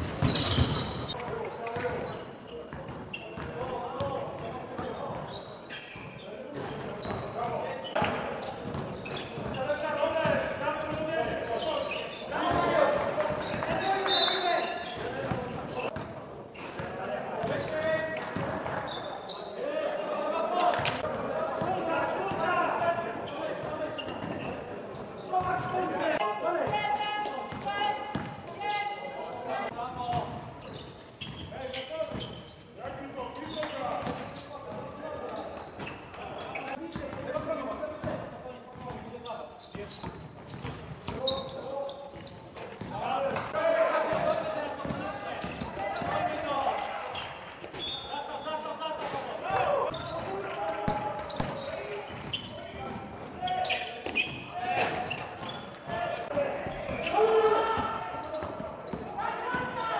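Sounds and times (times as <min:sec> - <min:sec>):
basketball bouncing on court floor: 0:00.0 - 0:02.0, 0:02.7 - 0:03.7, 0:08.0 - 0:11.4, 0:27.5 - 0:28.4, 0:34.0 - 0:34.3, 0:39.8 - 0:41.4, 0:42.1 - 0:43.5, 0:44.1 - 0:46.2, 0:50.9 - 0:53.3
players calling out: 0:42.9 - 0:59.9.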